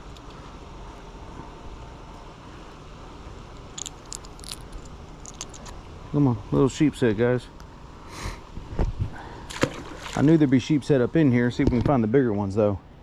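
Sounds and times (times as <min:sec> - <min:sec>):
wind rumble on microphone: 0:08.6 - 0:09.2.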